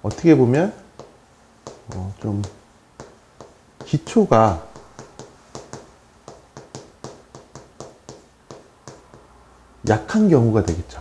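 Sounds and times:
chalk tapping and scraping on chalkboard: 0:00.1 - 0:10.0.

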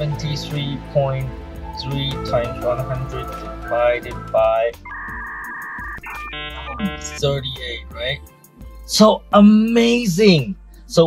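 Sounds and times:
quick electronic beeps: 0:03.6 - 0:07.2
two-note electronic tone: 0:03.6 - 0:07.2.

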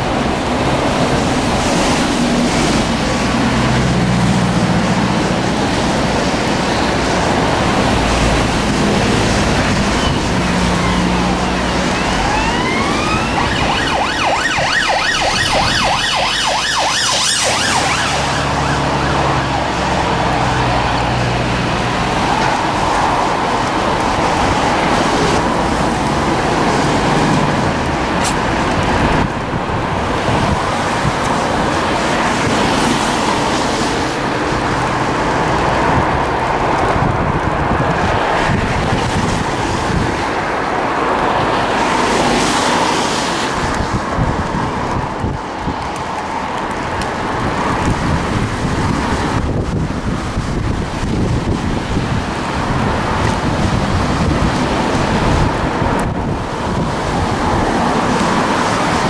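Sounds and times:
road traffic rush: 0:00.0 - 0:59.0
wind noise: 0:00.0 - 0:59.0
siren warbling: 0:09.4 - 0:20.1.

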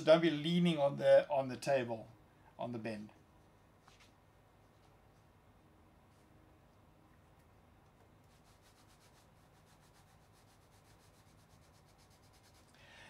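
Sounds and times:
paper rubbing under nozzle: 0:08.3 - 0:12.8.

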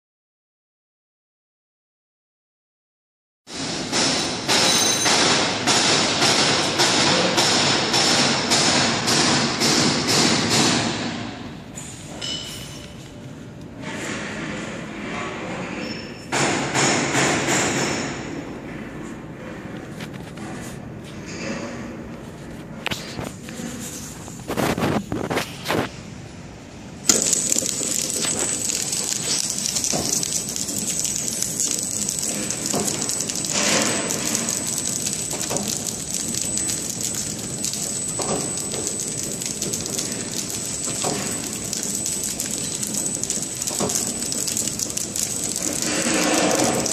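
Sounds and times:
packing machine clicking and rattling: 0:27.1 - 0:46.9.

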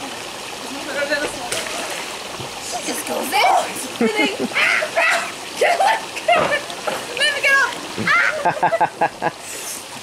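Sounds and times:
pool water splashing: 0:00.0 - 0:10.0
women laughing and squealing: 0:03.6 - 0:06.8, 0:08.0 - 0:09.3.

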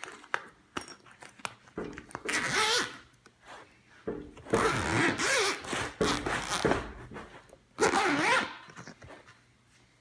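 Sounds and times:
zipper rasping along track: 0:04.5 - 0:08.7.

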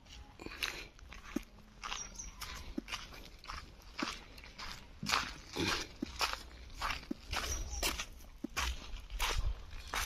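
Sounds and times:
footsteps crunching on dry leaves: 0:00.0 - 0:10.0.

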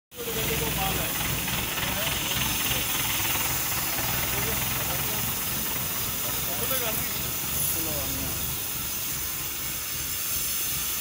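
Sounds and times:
steady hiss: 0:00.2 - 0:11.0.

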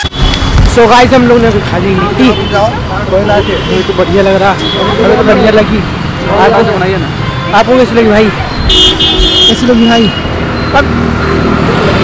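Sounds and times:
street traffic: 0:00.0 - 0:12.0
people talking: 0:00.7 - 0:08.6
vehicle horn honking: 0:01.9 - 0:05.5, 0:08.7 - 0:10.3.

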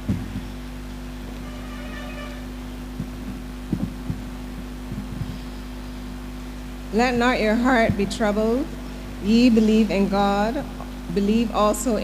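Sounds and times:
soft low thumps: 0:00.0 - 0:01.4, 0:02.6 - 0:11.5
low electrical hum: 0:00.0 - 0:12.0.

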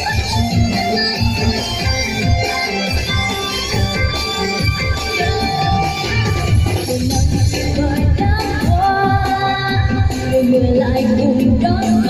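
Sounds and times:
music with a steady beat: 0:00.0 - 0:12.0.

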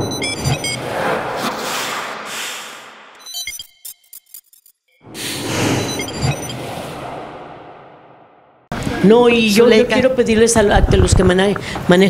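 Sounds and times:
whoosh: 0:00.7 - 0:03.2, 0:05.0 - 0:08.8.

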